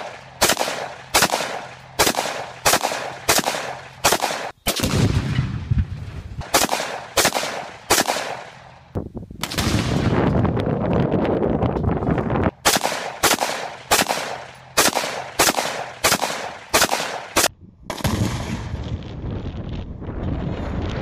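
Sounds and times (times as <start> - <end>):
rifle firing single shots: 0.0 - 5.5, 6.4 - 8.7, 9.4 - 10.1, 12.6 - 18.6.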